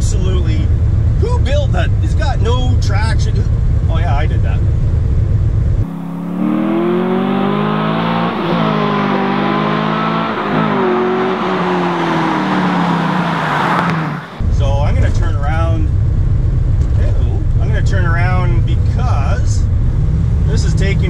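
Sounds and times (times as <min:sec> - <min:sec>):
car engine revving through gears: 0:05.8 - 0:14.4.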